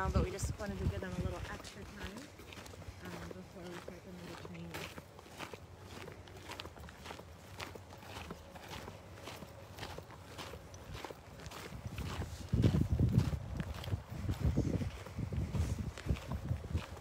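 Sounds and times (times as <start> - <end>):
footsteps on gravel: 0.0 - 17.0.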